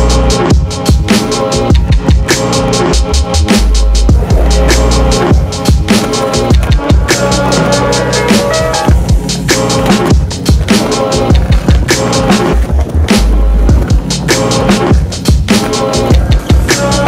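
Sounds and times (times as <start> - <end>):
instrumental beat track: 0.0 - 17.0
skateboard wheels rolling on concrete: 0.1 - 17.0.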